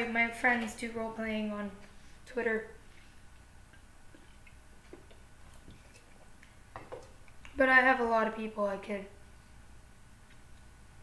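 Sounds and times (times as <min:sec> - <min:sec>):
soft mouth clicks: 0:07.2 - 0:07.6.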